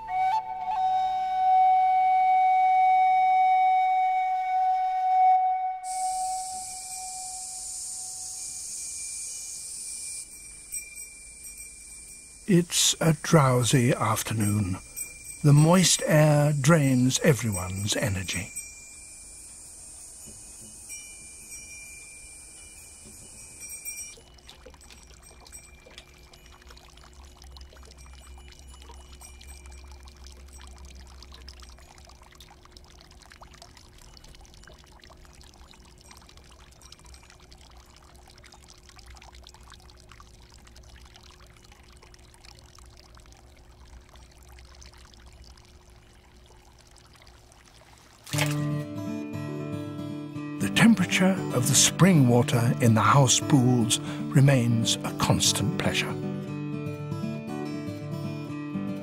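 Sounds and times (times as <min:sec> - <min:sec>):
water trickling into pool: 0:00.0 - 0:59.0
high-pitched buzz: 0:05.9 - 0:23.7
acoustic guitar music: 0:12.4 - 0:19.1, 0:48.3 - 0:59.0.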